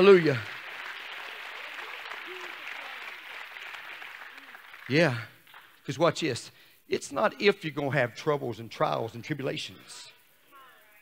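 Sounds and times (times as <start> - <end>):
congregation applauding: 0.0 - 5.9.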